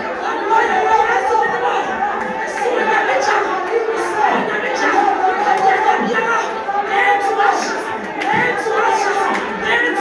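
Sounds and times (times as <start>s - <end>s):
women praying aloud: 0.0s - 10.0s.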